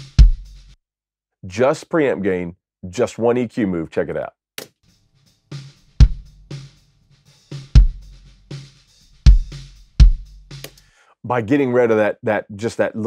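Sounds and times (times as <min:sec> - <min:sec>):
deep kick drum hits: 0:00.0 - 0:00.6, 0:06.0 - 0:06.4, 0:07.7 - 0:08.2, 0:09.3 - 0:10.5
light snare hits: 0:10.5 - 0:10.8.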